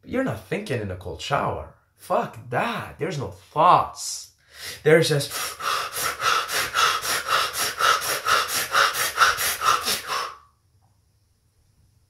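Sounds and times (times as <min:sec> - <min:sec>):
man breathing hard and fast: 0:04.4 - 0:10.5.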